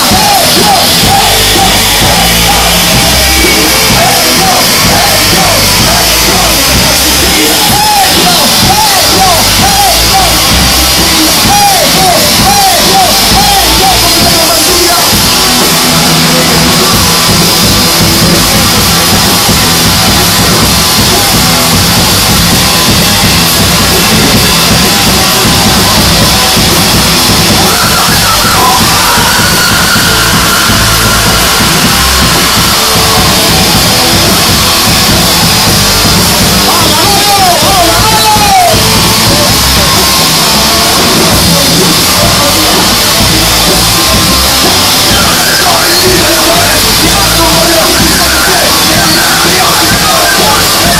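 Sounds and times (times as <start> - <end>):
live band playing loud: 0.0 - 50.9.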